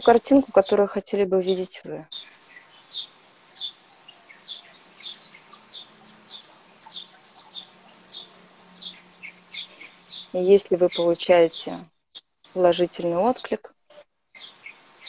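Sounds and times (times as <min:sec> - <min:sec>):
small bird chirping: 0:00.0 - 0:15.0.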